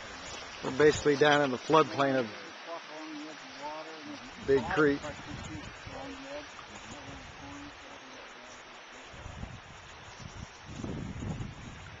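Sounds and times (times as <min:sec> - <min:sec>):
rushing creek: 0:00.0 - 0:12.0.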